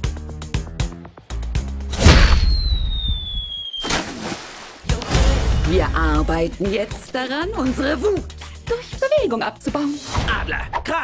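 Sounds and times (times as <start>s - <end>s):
sharp cartoon hit: 2.0s - 3.0s
whistle sliding down in pitch: 2.3s - 3.9s.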